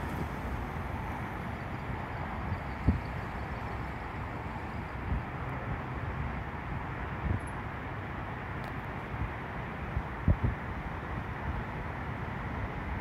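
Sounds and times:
outdoor background rumble and hiss: 0.0s - 13.0s.

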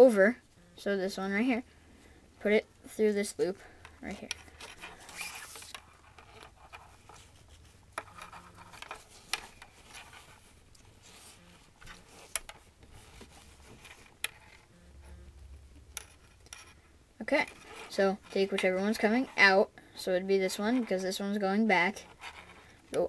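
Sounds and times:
cord rubbing and zipping: 4.4s - 15.2s, 17.4s - 18.5s, 22.0s - 22.8s.

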